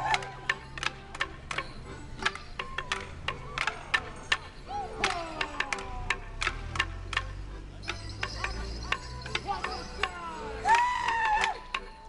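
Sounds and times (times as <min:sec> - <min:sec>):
wooden sticks clacking: 0:00.0 - 0:12.0.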